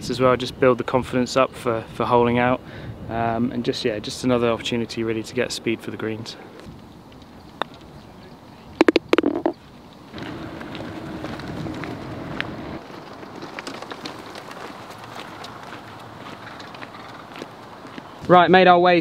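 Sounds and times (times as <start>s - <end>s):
golf ball rattling into cup: 8.8s - 9.6s.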